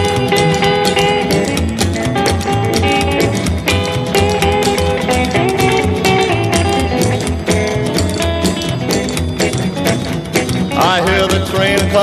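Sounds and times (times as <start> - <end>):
bass line: 0.0 - 12.0
rockabilly guitar: 0.0 - 12.0
steady beat: 0.0 - 12.0.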